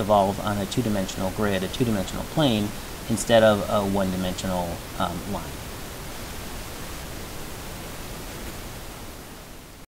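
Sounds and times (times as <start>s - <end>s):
steady background hiss: 0.0s - 9.9s.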